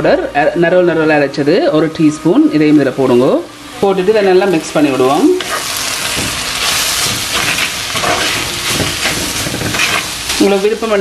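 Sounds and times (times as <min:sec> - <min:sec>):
onions sizzling in oil: 0:02.4 - 0:11.0
spatula scraping pot: 0:05.3 - 0:10.4.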